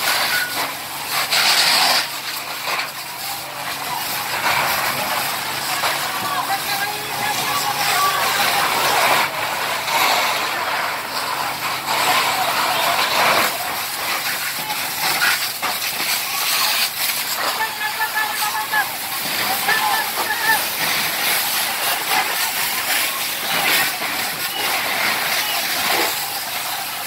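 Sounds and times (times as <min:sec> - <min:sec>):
fire hose water spraying: 0:00.0 - 0:27.0
indistinct voices: 0:00.0 - 0:27.0.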